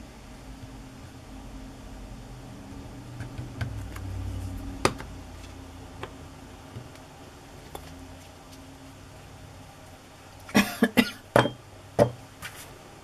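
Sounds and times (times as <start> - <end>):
person coughing: 10.5 - 11.2.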